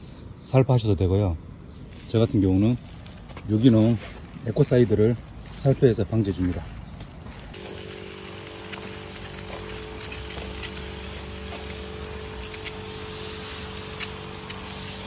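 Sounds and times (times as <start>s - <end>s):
sprayer pump humming: 2.5s - 15.0s
spray hissing from nozzle: 7.5s - 15.0s.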